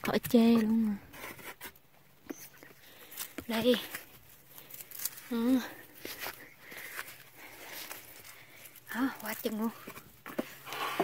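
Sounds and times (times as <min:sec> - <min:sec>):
hands rustling among plants: 0:00.8 - 0:11.0.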